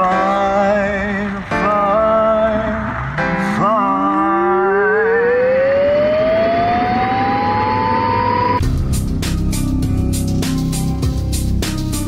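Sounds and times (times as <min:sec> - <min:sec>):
wavering held notes: 0:00.0 - 0:08.6
siren-like rising tone: 0:02.8 - 0:08.6.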